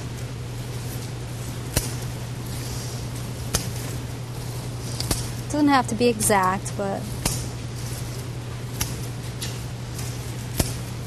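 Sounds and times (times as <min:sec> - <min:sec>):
scissors snipping stems: 0:04.9 - 0:05.4, 0:08.8 - 0:10.9.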